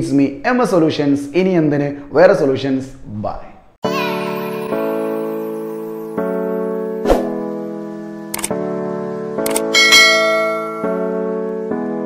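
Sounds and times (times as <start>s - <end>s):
background music with sustained notes: 3.8s - 12.0s
click sound effect: 8.3s - 8.6s, 9.4s - 9.7s
bright bell ding: 9.8s - 11.1s.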